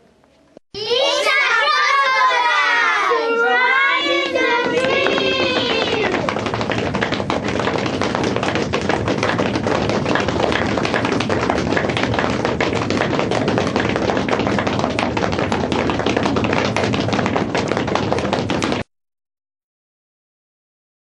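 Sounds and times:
audience clapping: 2.9 - 18.9.

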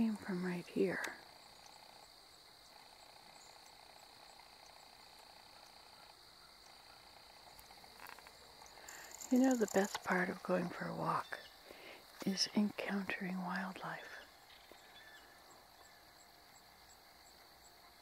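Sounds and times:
insect chorus: 0.0 - 18.0
faint clicks: 0.2 - 2.1, 2.7 - 10.4.

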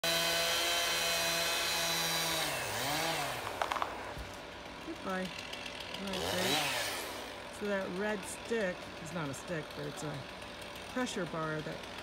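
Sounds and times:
chainsaw cutting wood: 0.0 - 12.0.

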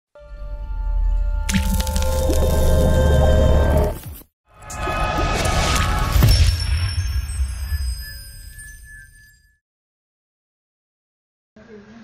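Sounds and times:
wet splashing sound effect: 1.5 - 3.2.

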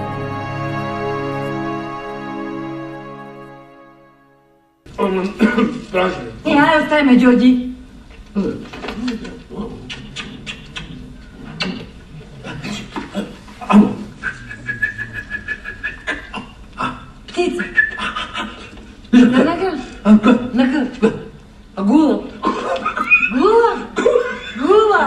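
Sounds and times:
steady high tone: 0.0 - 4.8
film dialogue over speakers: 0.0 - 25.0.

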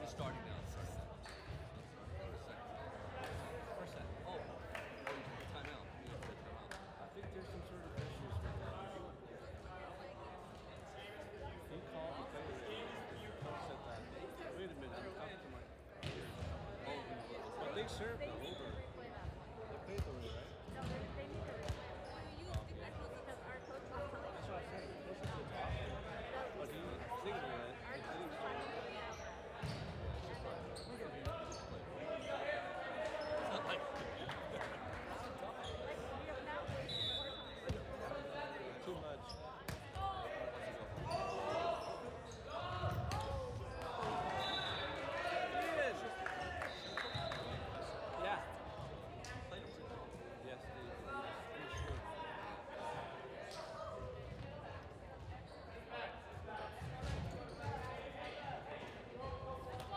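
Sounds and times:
players' voices and chatter: 0.0 - 59.9.

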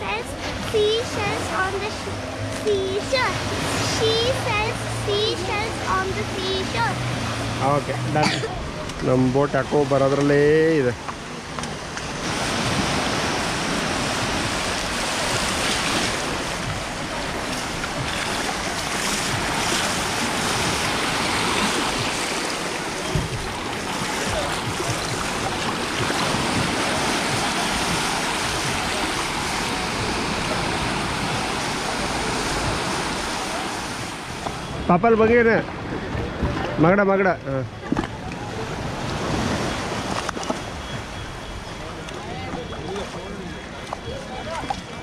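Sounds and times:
small waves washing over sand: 0.0 - 45.0.

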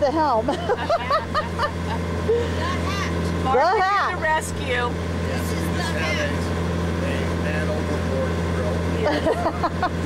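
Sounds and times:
people talking: 0.0 - 1.8, 2.4 - 6.4, 7.0 - 9.3
boat engine droning: 0.0 - 10.0.

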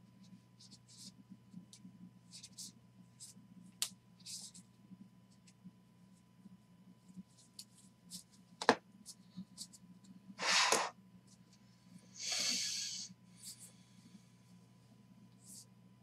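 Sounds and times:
cards sliding swishes: 10.4 - 10.9.

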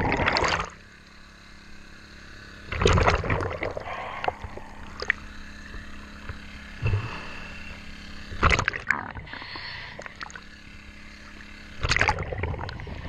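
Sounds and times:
gurgling air bubbles underwater: 0.0 - 0.8, 2.7 - 5.2, 8.4 - 10.5, 11.8 - 13.0
steady low hum: 0.0 - 13.0.

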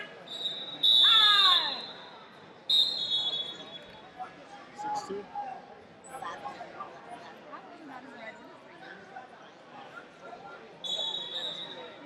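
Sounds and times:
chatter in a large hall: 0.0 - 12.0
referee's whistle blast: 0.3 - 2.1, 2.7 - 3.9.

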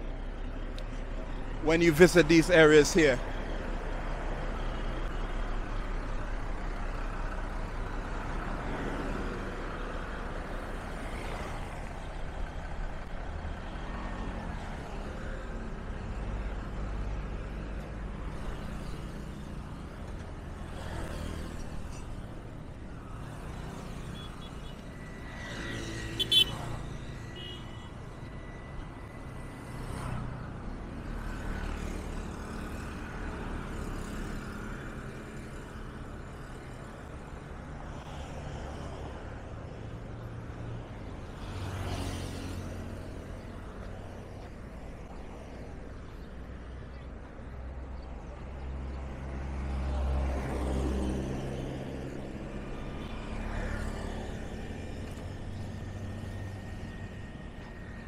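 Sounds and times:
road traffic passing: 0.0 - 58.0.

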